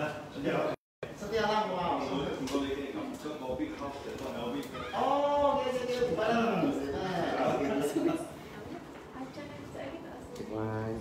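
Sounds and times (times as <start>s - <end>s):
men talking indistinctly: 0.0s - 8.3s.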